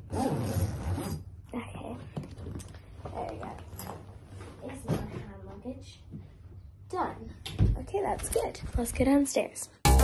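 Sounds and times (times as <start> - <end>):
zip being pulled closed: 0.0 - 1.3.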